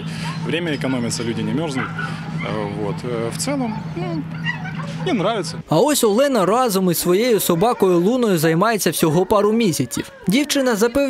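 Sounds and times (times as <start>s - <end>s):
steady low hum: 0.0s - 5.8s
dog barking: 0.2s - 2.9s, 3.7s - 5.1s
man talking: 5.0s - 11.0s.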